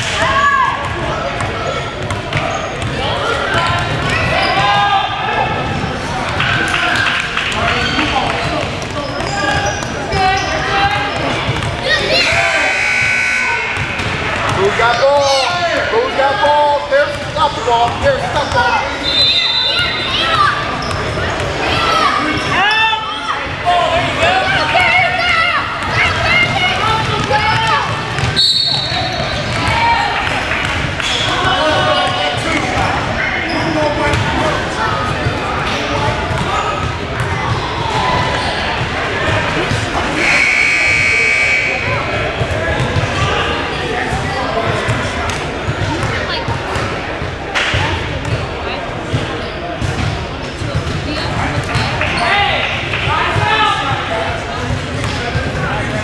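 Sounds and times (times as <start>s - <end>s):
voices of players and spectators: 0.0s - 56.0s.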